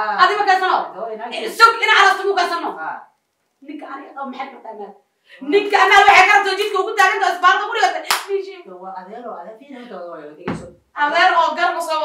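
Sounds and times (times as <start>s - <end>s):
hand clap: 8.1s - 8.3s.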